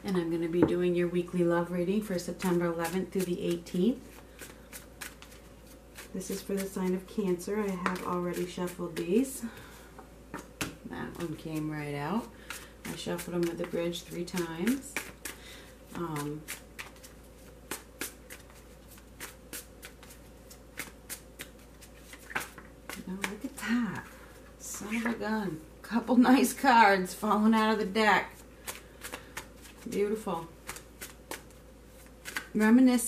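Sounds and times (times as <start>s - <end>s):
cards shuffling: 2.8s - 6.8s, 12.4s - 23.6s, 28.6s - 32.6s.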